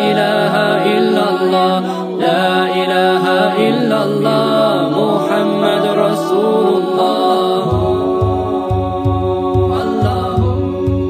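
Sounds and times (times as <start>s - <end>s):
voices chanting a melody: 0.0s - 11.0s
held low drone: 7.6s - 11.0s.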